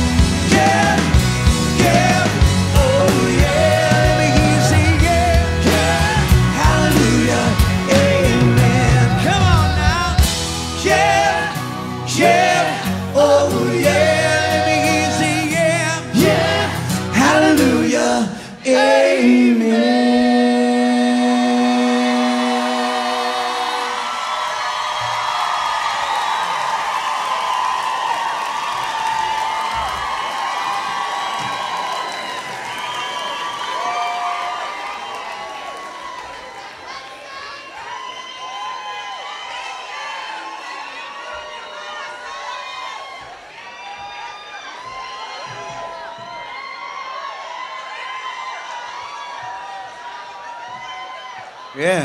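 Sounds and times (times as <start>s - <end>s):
audience cheering and applauding: 0.0s - 18.0s, 21.4s - 52.0s
live rock band: 0.0s - 18.5s.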